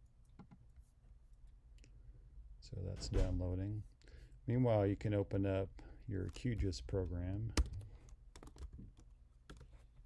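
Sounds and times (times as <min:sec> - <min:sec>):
computer keyboard keystrokes: 0:07.6 - 0:09.7.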